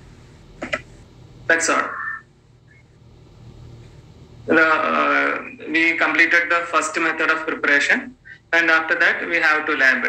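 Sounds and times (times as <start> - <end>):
faint low background hum: 0.0 - 10.0.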